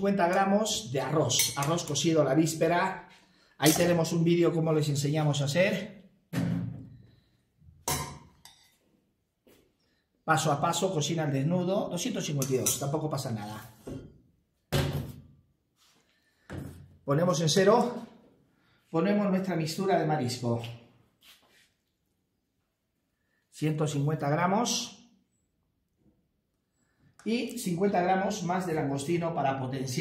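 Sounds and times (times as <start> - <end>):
metal spoon clinking on glass bowl: 1.3 - 1.9.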